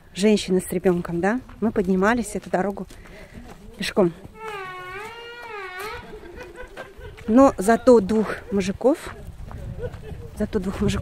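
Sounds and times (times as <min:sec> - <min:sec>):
toddler whining: 0:04.4 - 0:06.1.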